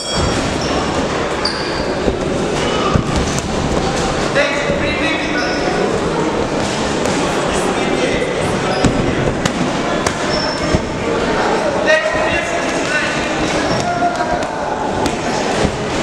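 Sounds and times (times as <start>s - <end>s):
noisy crowd: 0.0s - 16.0s.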